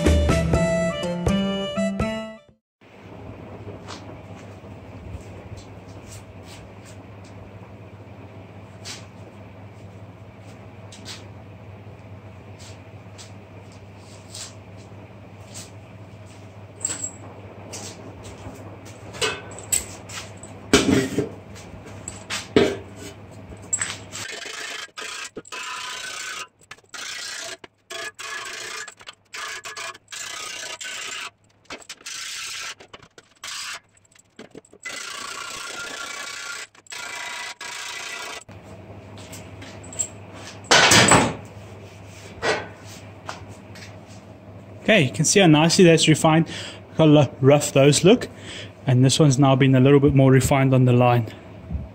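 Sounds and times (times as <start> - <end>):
file scraping on steel: 24.2 - 34.0.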